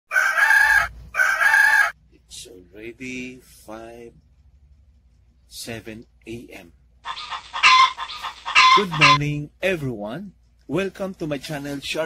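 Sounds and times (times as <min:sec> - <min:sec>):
rooster crowing: 0:00.1 - 0:02.0, 0:07.1 - 0:09.2.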